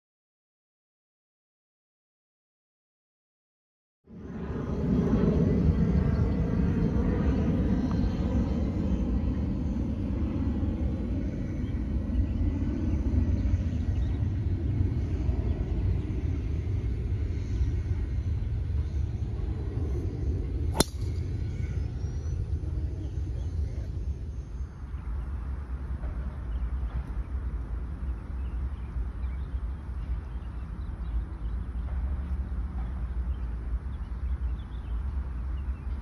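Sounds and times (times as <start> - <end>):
golf club striking ball: 20.7 - 21.3.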